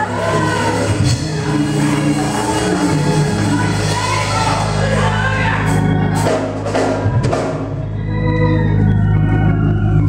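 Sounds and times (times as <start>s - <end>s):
congregation calling out: 0.0s - 7.0s
sustained low keyboard chords: 0.0s - 10.0s.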